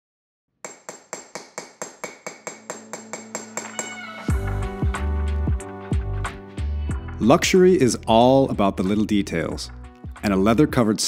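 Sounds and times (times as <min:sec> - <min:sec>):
rhythmic metallic tapping: 0:01.7 - 0:04.0.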